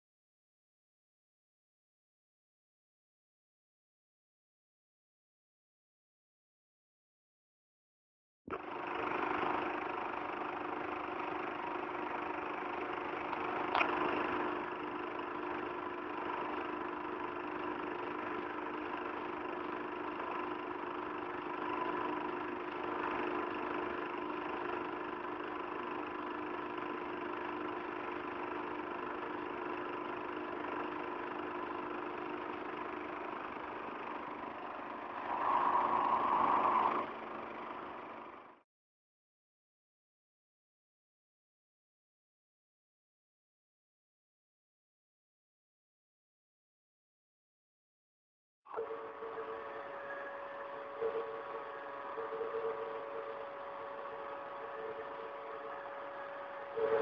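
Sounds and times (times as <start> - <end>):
workshop machinery humming: 48.7 - 57.0.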